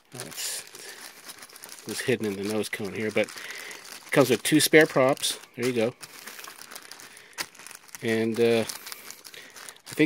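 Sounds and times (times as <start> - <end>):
plastic bag rustling and crinkling: 0.0 - 10.0.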